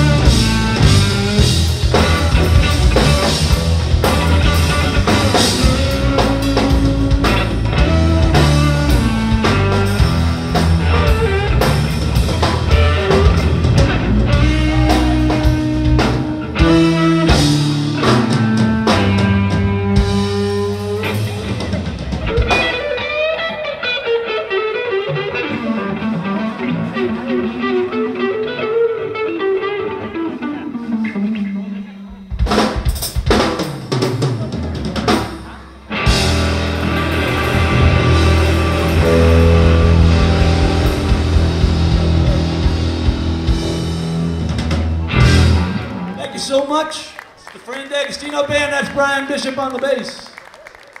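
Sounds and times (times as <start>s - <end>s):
drum kit: 0.0s - 23.7s, 32.0s - 46.2s
electric guitar with bending notes: 0.0s - 47.4s
bass guitar: 0.0s - 47.6s.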